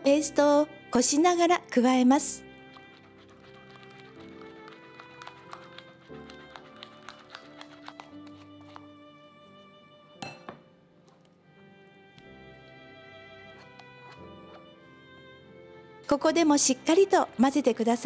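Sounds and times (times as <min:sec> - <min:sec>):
soft string background music: 0:00.0 - 0:18.0.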